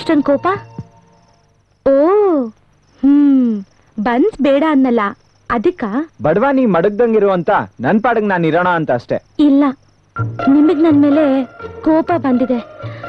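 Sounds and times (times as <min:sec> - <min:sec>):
people talking: 0:00.0 - 0:00.7, 0:01.9 - 0:09.8, 0:10.4 - 0:12.7
high cricket chirping: 0:00.0 - 0:13.0.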